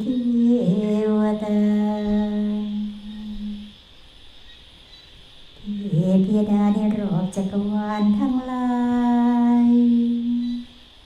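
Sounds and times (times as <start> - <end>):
nuns chanting: 0.0 - 3.8, 5.6 - 10.8.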